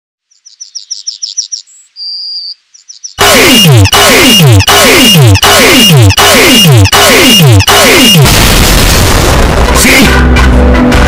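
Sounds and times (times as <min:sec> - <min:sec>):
bird chirping and whistling: 0:00.3 - 0:03.2
alarm with falling sweeps: 0:03.2 - 0:08.4.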